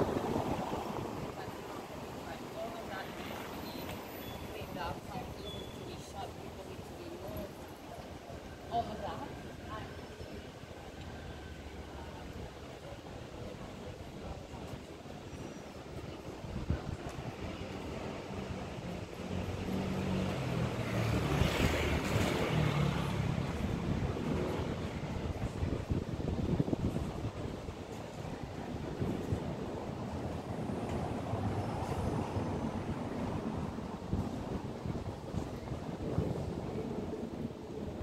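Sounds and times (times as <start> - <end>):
wind on microphone: 0.0 - 3.0, 12.2 - 38.0.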